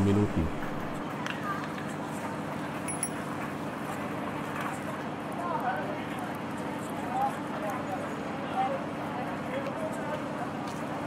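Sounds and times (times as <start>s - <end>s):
faint indistinct voices: 0.0s - 11.0s
steady background hum: 0.0s - 11.0s.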